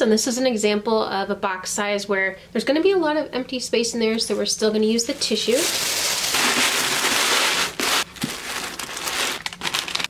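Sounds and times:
tissue paper crinkling: 0:05.1 - 0:10.0.

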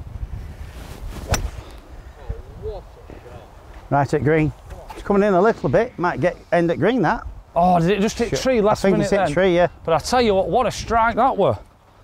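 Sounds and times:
golf club striking ball: 0:01.3 - 0:01.7.

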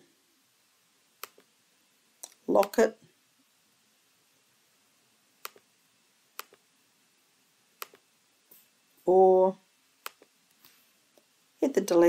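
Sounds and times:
computer mouse clicks: 0:01.2 - 0:01.5, 0:05.4 - 0:05.7, 0:06.4 - 0:06.6, 0:07.8 - 0:08.0, 0:10.0 - 0:10.3.

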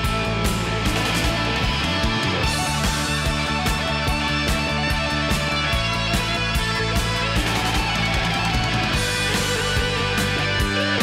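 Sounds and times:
electric guitar: 0:00.0 - 0:11.0
hard rock instrumental: 0:00.0 - 0:11.0
steady drum beat: 0:00.0 - 0:11.0.

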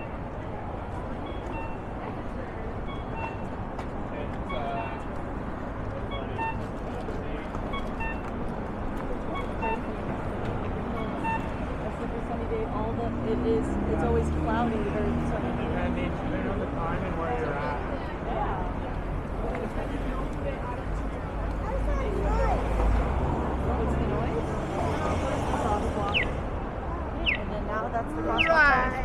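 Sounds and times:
city traffic: 0:00.0 - 0:29.0
crossing signal beeping: 0:01.0 - 0:03.7, 0:04.4 - 0:05.2, 0:06.0 - 0:06.8, 0:07.6 - 0:08.4, 0:09.3 - 0:10.1, 0:10.8 - 0:11.8
people talking: 0:09.2 - 0:29.0.

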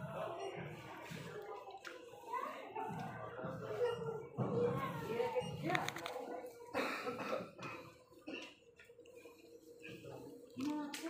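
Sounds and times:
people talking: 0:00.0 - 0:08.4, 0:09.8 - 0:11.0.

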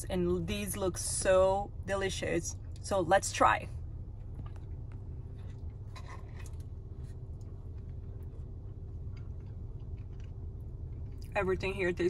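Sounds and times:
low car cabin hum: 0:00.0 - 0:12.0
person chewing: 0:04.3 - 0:11.3.

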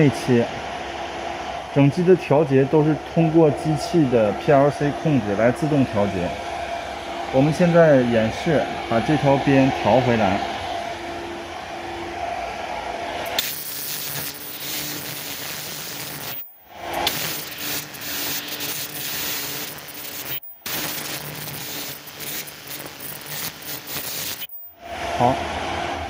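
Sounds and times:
machine humming and hissing: 0:00.0 - 0:26.0.

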